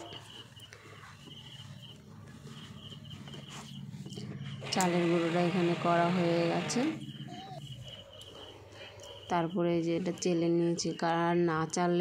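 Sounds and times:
mixer grinder motor whining: 0:04.1 - 0:07.5
pulsing high chirp: 0:07.0 - 0:09.6.

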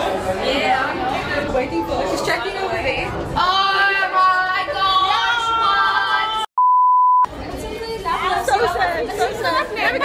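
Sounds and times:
high beep tone: 0:06.6 - 0:07.3
women talking and exclaiming: 0:07.4 - 0:10.0.

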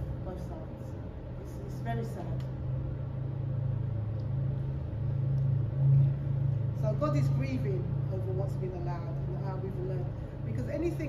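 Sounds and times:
low rumble or hum: 0:00.0 - 0:11.0.

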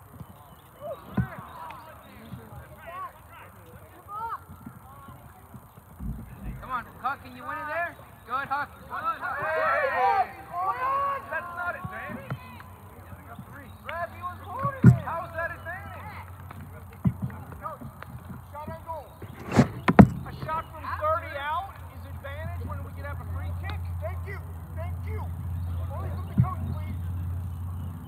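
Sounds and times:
players shouting: 0:00.4 - 0:05.5, 0:06.4 - 0:27.4
sharp thuds: 0:19.2 - 0:20.8.

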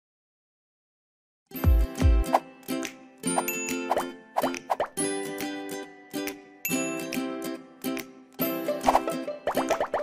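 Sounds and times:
bright cartoon jingle tune: 0:01.5 - 0:10.0.

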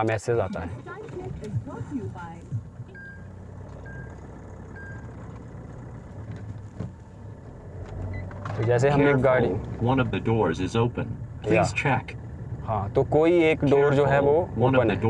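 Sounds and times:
car engine humming: 0:00.0 - 0:15.0
electronic warning beeps: 0:02.9 - 0:05.1.

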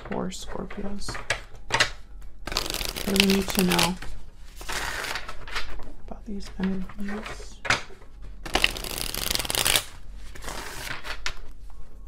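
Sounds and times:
cards being shuffled: 0:02.5 - 0:11.6.

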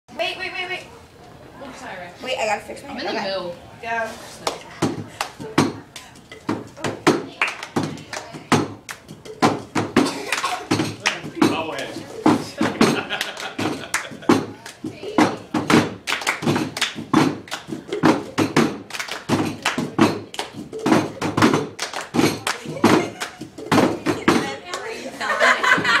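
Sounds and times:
hand claps: 0:04.4 - 0:11.9, 0:12.6 - 0:24.9.

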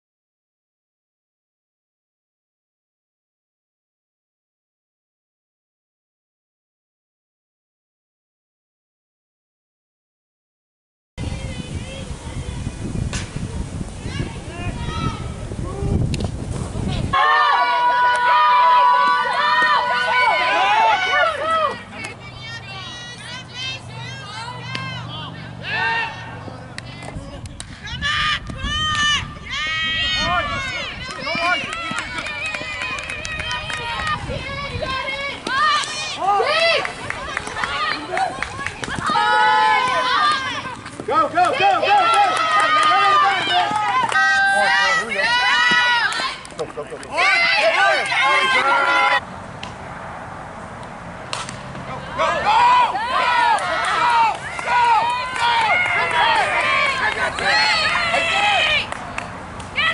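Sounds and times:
people shouting and calling out: 0:14.0 - 0:16.1, 0:16.9 - 0:49.2, 0:51.7 - 0:59.9.

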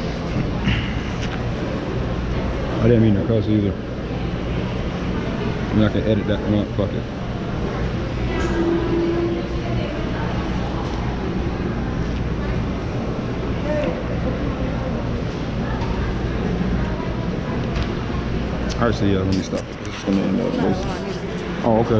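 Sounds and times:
indistinct voices: 0:07.2 - 0:21.9.

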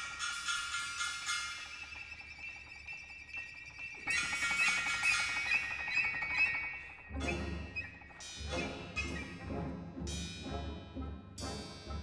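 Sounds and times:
contemporary ensemble music: 0:00.0 - 0:12.0.

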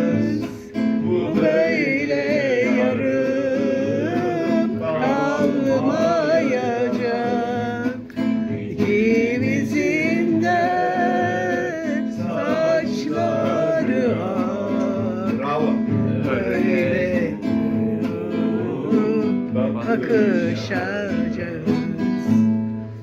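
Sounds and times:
acoustic guitar strumming: 0:00.0 - 0:23.0
person singing: 0:00.0 - 0:23.0.

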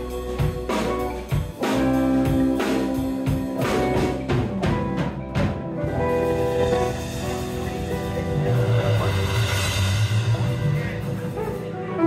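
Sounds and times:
drums hitting a steady beat: 0:00.0 - 0:12.0
live band playing: 0:00.0 - 0:12.0.

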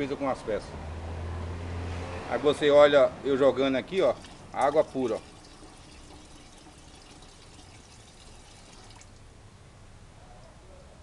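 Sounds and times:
water trickling into bucket: 0:03.8 - 0:09.3.

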